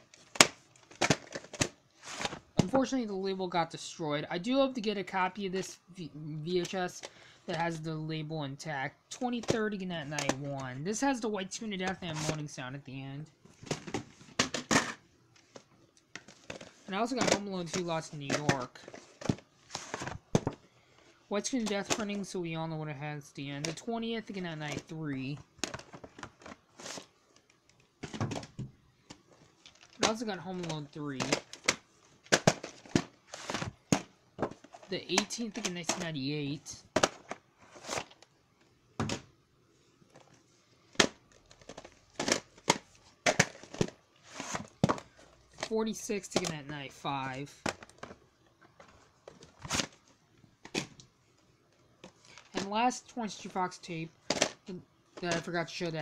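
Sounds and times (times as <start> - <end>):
plastic cases clacking: 0.0 - 2.8, 9.1 - 10.7, 13.5 - 20.7, 21.4 - 22.3, 23.6 - 36.2, 36.8 - 38.3, 40.1 - 46.7, 47.5 - 51.1, 51.7 - 52.8, 53.4 - 55.9
rustling: 39.8 - 45.7.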